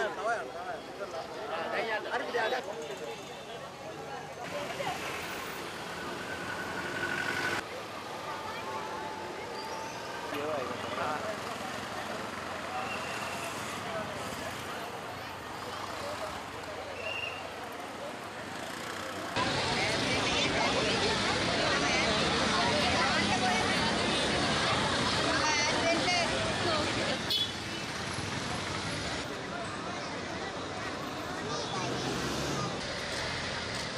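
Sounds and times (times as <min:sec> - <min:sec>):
crowd voices talking: 0:00.0 - 0:33.9
street background noise: 0:00.0 - 0:33.9.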